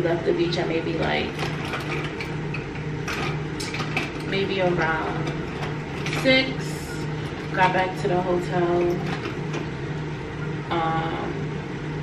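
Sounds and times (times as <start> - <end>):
low pulsing hum: 0.0 - 12.0.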